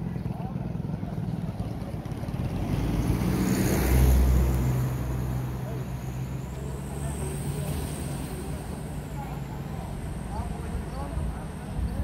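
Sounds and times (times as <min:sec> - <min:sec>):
faint voices: 0:00.0 - 0:03.1, 0:04.4 - 0:12.0
vehicle engine running: 0:00.0 - 0:12.0.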